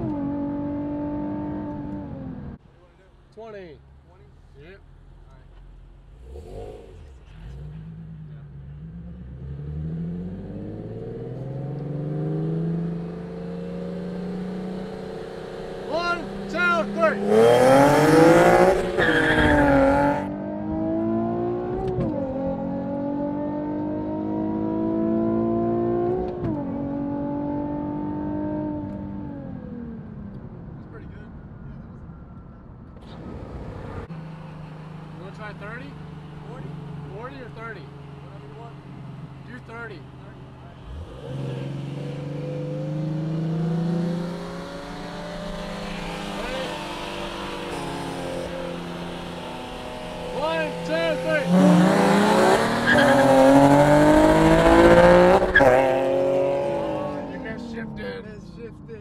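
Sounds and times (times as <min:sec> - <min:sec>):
car engine accelerating hard: 0:00.0 - 0:02.6, 0:05.2 - 0:30.9, 0:33.0 - 0:58.3.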